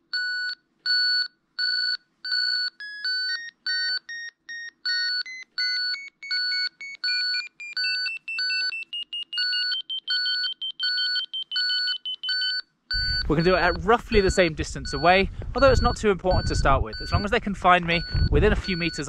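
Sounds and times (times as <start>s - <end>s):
beeps climbing in pitch: 2.3s - 19.0s
steady fixed-pitch beeps: 3.7s - 19.0s.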